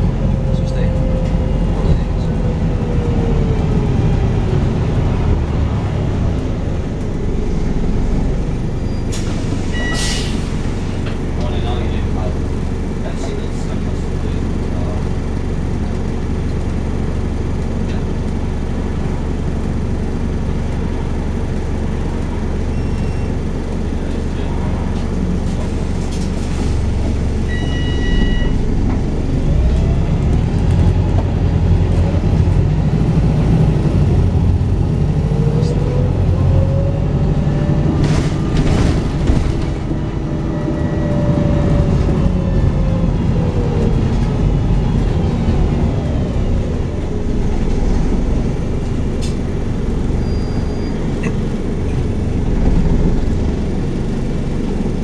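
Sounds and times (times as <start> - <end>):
bus diesel engine running: 0.0 - 55.0.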